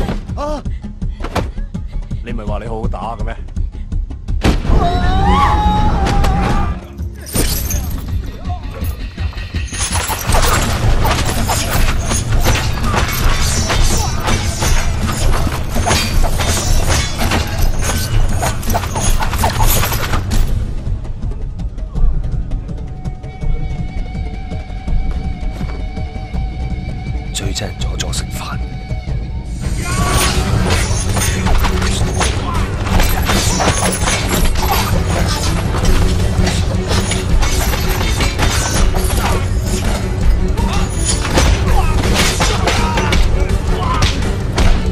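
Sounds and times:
action film music: 0.0s - 44.9s
fight hits and clashes: 9.6s - 20.5s, 29.8s - 44.9s
things breaking: 30.0s - 43.3s.

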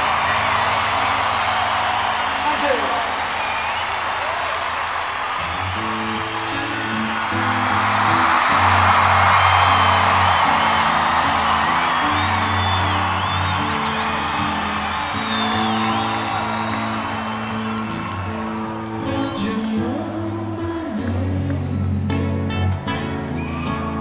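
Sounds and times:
audience cheering and whistling: 0.0s - 21.3s, 22.9s - 24.0s
acoustic guitar playing chords: 5.4s - 24.0s.

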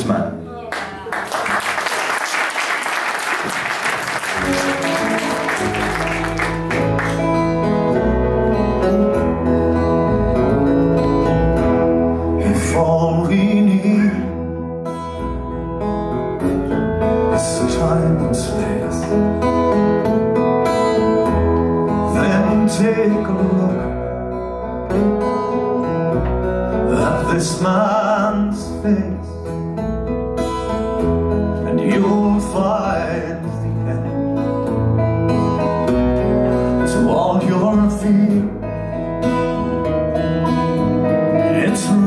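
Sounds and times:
audience applause: 0.7s - 7.5s
acoustic guitar: 2.7s - 42.0s
electric bass guitar: 4.2s - 42.0s.

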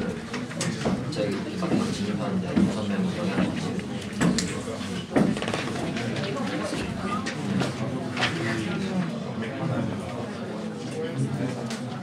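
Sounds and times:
babble of overlapping voices: 0.0s - 12.0s.

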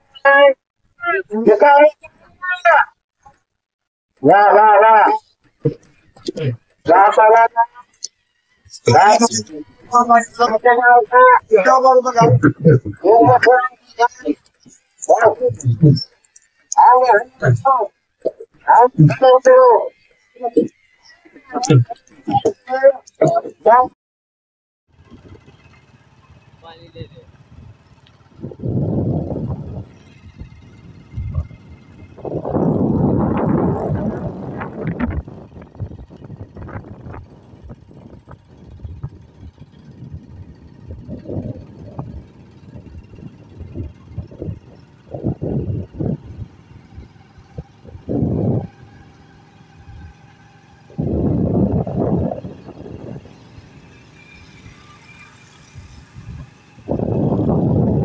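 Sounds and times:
low road rumble: 0.0s - 24.0s, 24.9s - 58.0s
wind buffeting microphone: 27.3s - 50.2s, 50.8s - 53.8s, 55.6s - 58.0s.

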